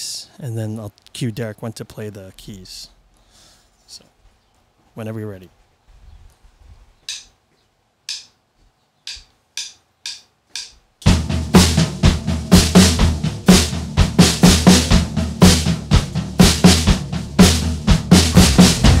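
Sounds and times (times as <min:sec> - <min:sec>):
drumstick clicks: 0:07.1 - 0:07.4, 0:08.0 - 0:08.4, 0:09.0 - 0:10.8
drum kit playing a beat: 0:09.1 - 0:19.0.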